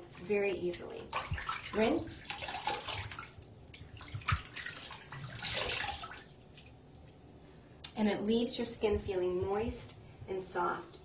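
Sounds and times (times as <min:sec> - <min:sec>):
water dripping: 0:00.0 - 0:07.2
water splashing at a sink: 0:00.0 - 0:07.2.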